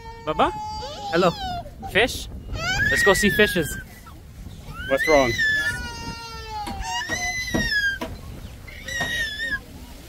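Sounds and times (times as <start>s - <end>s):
toddler whining and crying: 0.0s - 4.0s, 4.7s - 9.7s.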